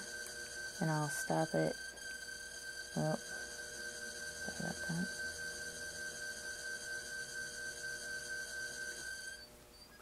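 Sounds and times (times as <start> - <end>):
pottery wheel motor whine: 0.0 - 10.0.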